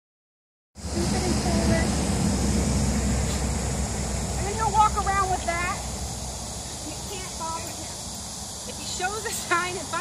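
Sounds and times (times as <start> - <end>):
steady high hiss: 0.8 - 10.0
steady low rumble: 0.8 - 10.0.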